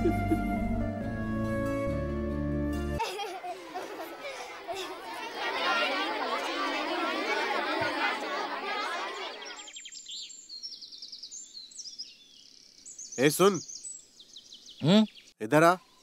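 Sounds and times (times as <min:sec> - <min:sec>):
children chattering: 0:03.0 - 0:09.8
small birds chirping: 0:09.1 - 0:16.0.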